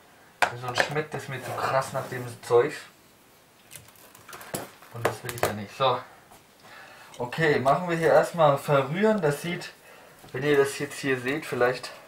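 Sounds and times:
plastic food containers handled: 0:03.7 - 0:05.7.

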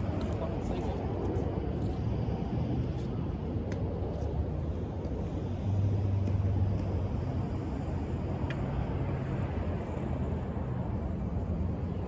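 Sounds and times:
passing vehicle engine rumble: 0:00.0 - 0:12.0.

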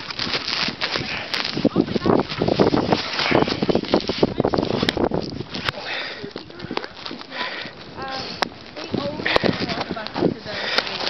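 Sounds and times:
camera rubbing against jacket: 0:00.0 - 0:11.0
wind on microphone: 0:00.0 - 0:11.0.

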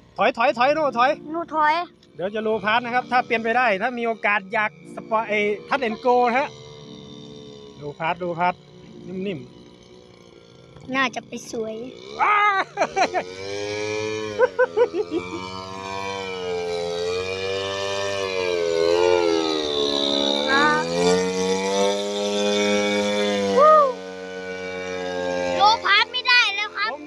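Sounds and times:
model aircraft engine flying past: 0:00.0 - 0:27.0.

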